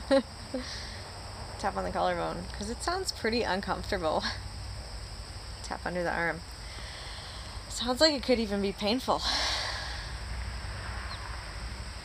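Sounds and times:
steady outdoor hiss: 0:00.0 - 0:12.0
bird chirp: 0:11.0 - 0:11.4.

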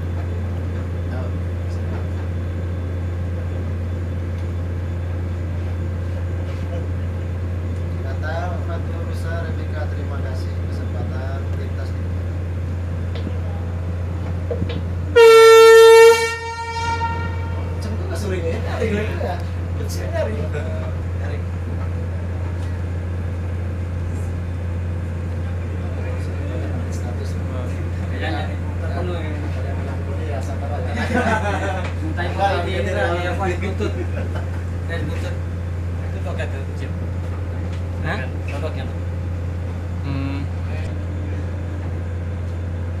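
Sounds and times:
ship engine drone: 0:00.0 - 0:43.0
ship's horn blast: 0:15.1 - 0:18.2.

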